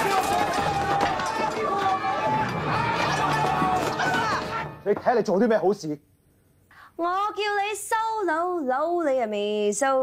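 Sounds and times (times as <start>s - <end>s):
people shouting in a scuffle: 0.0s - 4.8s.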